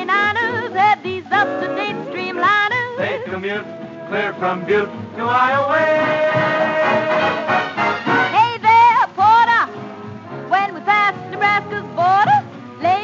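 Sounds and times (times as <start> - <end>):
swing band instrumental on old record: 0.0 - 13.0.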